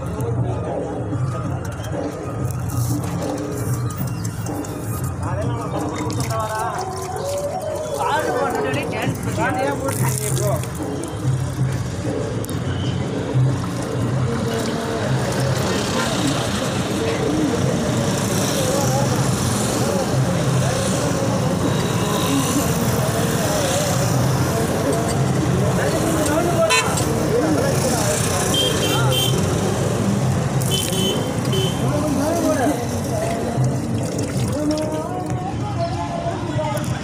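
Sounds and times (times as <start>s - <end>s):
people's voices: 0.0s - 37.0s
vehicles passing with engines running: 0.0s - 37.0s.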